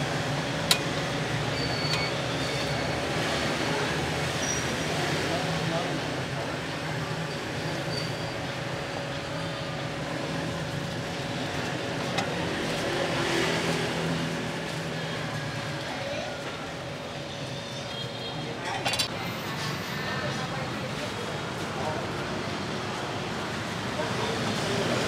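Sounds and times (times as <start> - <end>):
street traffic: 0.0 - 25.0
murmur of voices: 1.1 - 25.0.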